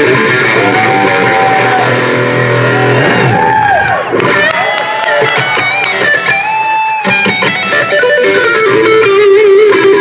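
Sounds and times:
electric guitar solo: 0:00.0 - 0:10.0.

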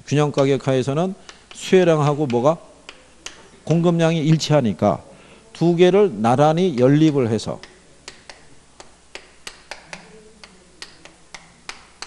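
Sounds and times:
chalk tapping on chalkboard: 0:01.2 - 0:03.4, 0:06.7 - 0:12.0.

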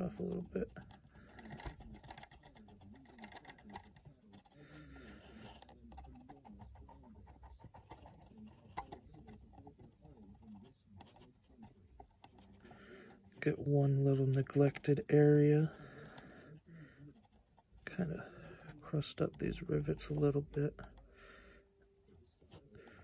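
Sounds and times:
paintbrush dabbing on plastic: 0:00.0 - 0:23.0.

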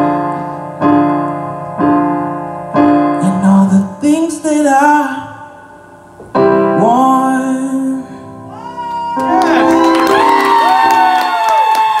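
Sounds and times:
long whoops: 0:08.5 - 0:12.0
audience clapping and cheering: 0:09.1 - 0:12.0.

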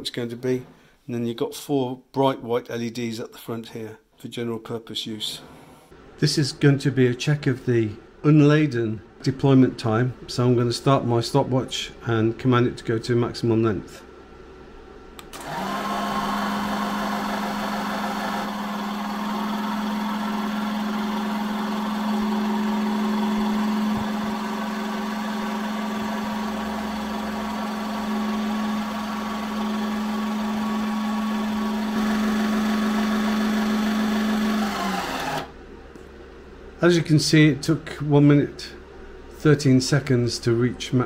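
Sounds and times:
hydraulic jack motor humming: 0:15.2 - 0:35.5.

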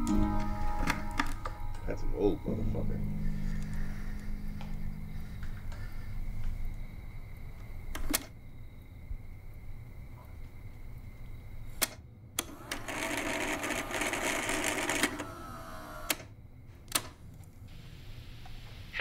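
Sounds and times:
answering machine mechanism clicks: 0:11.8 - 0:16.3
cassette tape drive whirring: 0:12.4 - 0:16.3.

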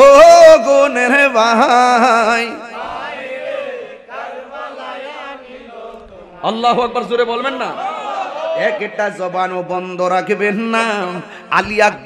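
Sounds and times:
man chanting into a microphone: 0:00.0 - 0:02.8, 0:08.8 - 0:12.0.

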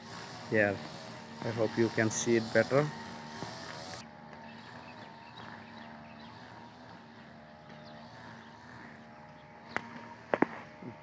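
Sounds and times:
faint machine hum: 0:00.0 - 0:11.0.

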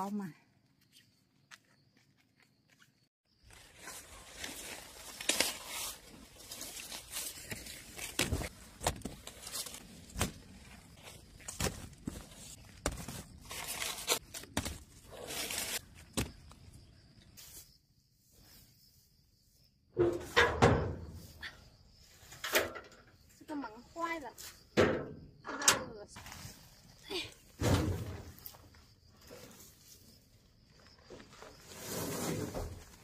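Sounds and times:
dry corn plants rustling: 0:03.4 - 0:17.8, 0:25.9 - 0:33.0.

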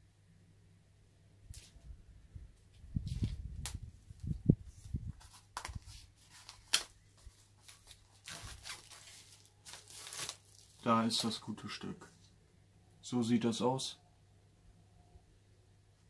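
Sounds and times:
plastic shrink-wrap tearing: 0:07.6 - 0:10.9.

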